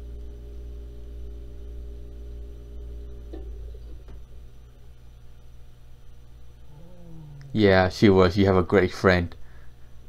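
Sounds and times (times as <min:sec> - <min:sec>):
low steady hum: 0:00.0 - 0:10.0
faint voice: 0:06.7 - 0:07.8.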